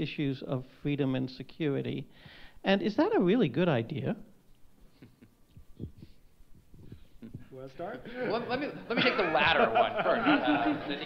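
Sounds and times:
microphone handling thumps: 5.6 - 7.6.

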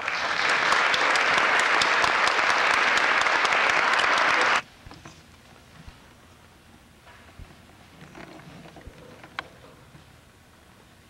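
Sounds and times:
audience applauding: 0.0 - 4.6.

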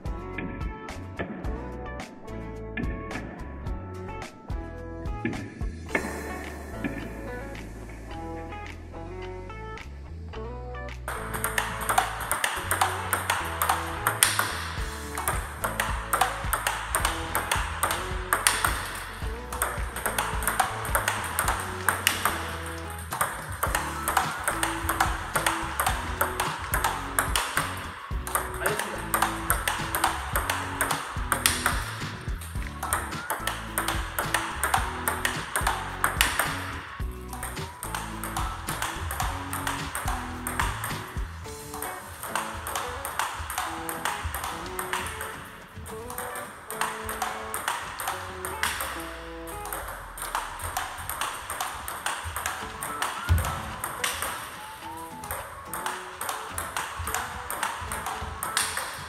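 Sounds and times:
background music with melody and bass: 0.0 - 59.0
table tennis ball hits and bounces: 11.0 - 59.0.

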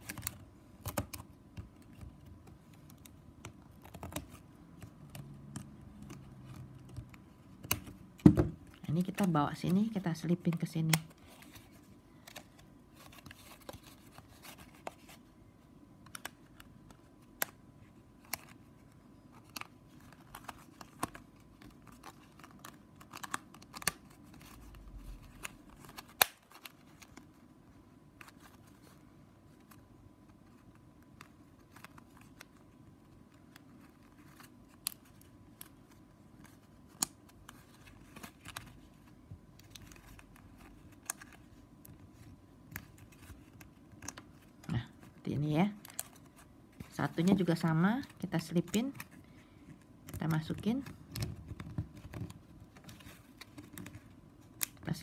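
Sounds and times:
sharp plastic snap: 26.0 - 26.7.

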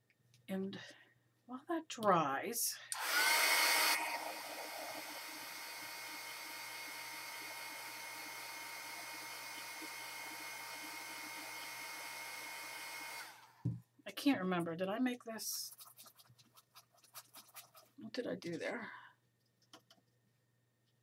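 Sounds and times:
handheld dryer blowing air: 2.9 - 13.6.

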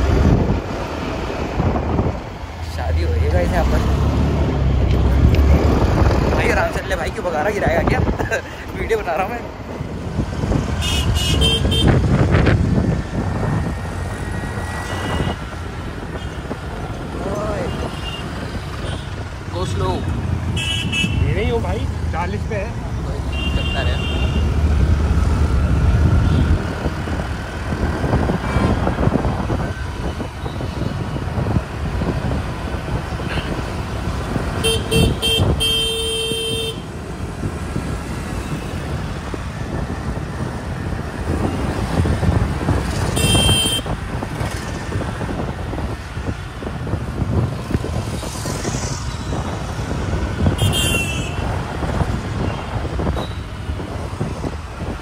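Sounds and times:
motorbike engine and road noise: 0.0 - 55.0
vehicle horns honking: 10.8 - 12.0, 20.6 - 21.3, 23.3 - 24.5, 28.4 - 28.8, 34.6 - 36.9, 43.1 - 43.9, 50.4 - 51.5.

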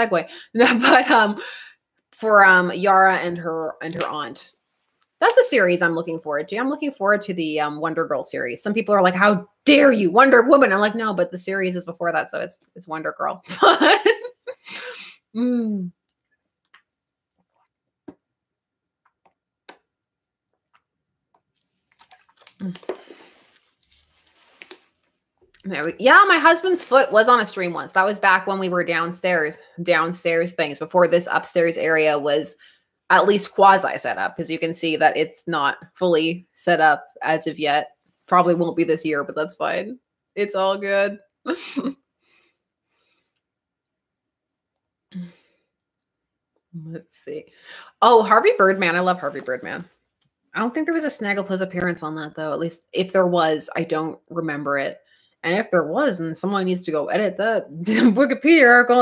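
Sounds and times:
woman speaking: 0.0 - 4.5, 5.2 - 16.0, 22.6 - 23.0, 25.6 - 41.9, 46.8 - 49.9, 50.6 - 59.0
plastic bottle crackling: 21.8 - 25.1.

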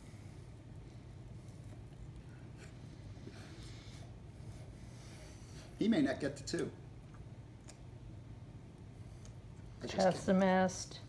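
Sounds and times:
steady low hum: 0.0 - 11.0
food being chewed and handled: 0.6 - 2.9.

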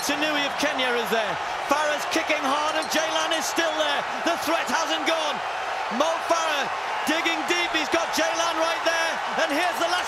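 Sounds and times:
man excitedly commentating: 0.0 - 10.0
stadium crowd noise: 0.0 - 10.0.

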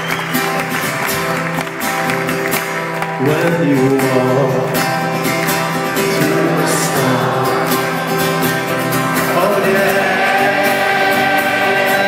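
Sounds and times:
acoustic guitar: 0.0 - 12.0
children's choir singing: 6.0 - 12.0.

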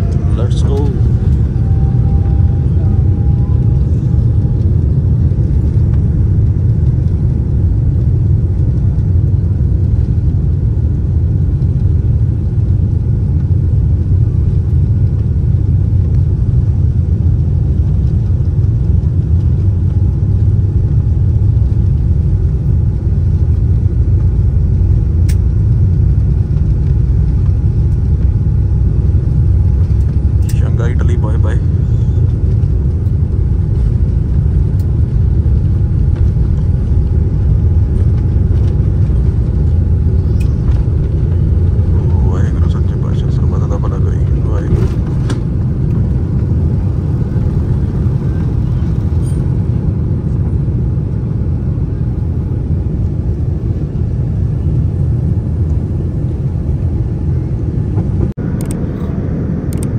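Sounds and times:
faint rising whine: 0.0 - 10.4, 19.5 - 51.2, 55.8 - 59.9
jet engines rumbling: 0.0 - 59.9.

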